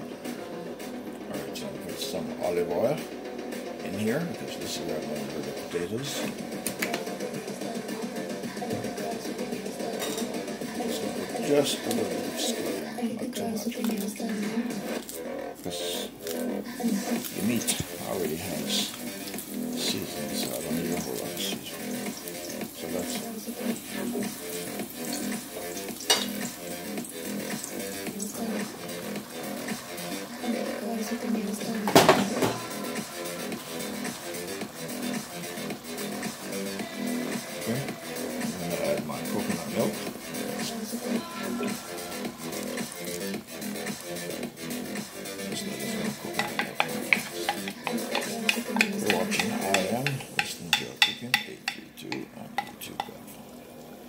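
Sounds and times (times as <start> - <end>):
background music: 0.0 - 54.0
oil sizzling in a pot: 4.8 - 14.2, 14.8 - 54.0
wooden spoon tapping a pan: 46.3 - 53.2.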